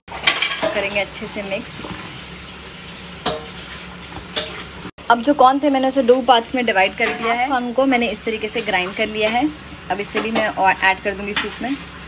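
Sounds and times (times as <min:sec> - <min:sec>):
ladle stirring and pouring soup: 0:01.8 - 0:04.9.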